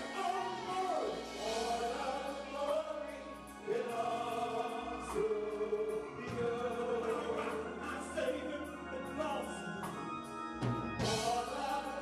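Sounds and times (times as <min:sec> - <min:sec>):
choir singing gospel: 0:00.0 - 0:12.0.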